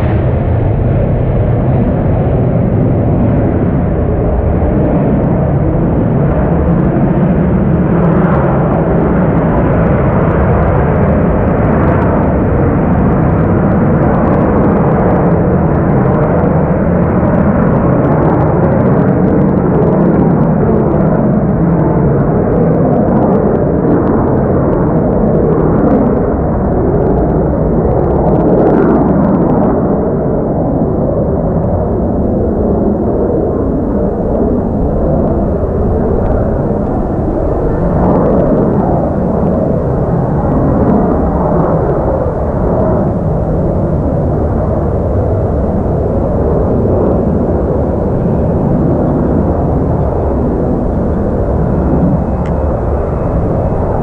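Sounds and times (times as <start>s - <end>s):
jet engine roar: 0.0s - 54.0s.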